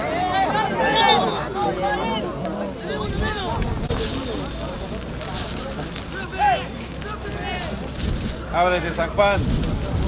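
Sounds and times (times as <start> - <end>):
people shouting and calling: 0.0 - 3.8, 6.1 - 7.8.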